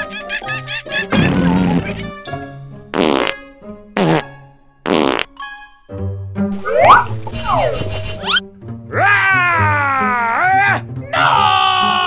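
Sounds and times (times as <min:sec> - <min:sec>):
light background music: 0:00.0 - 0:12.0
comic fart sound effects: 0:01.1 - 0:02.3, 0:02.9 - 0:03.4, 0:04.0 - 0:05.4.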